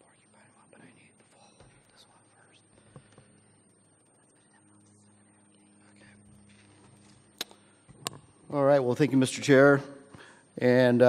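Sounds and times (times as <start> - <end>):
faint conversation: 0.0 - 6.5.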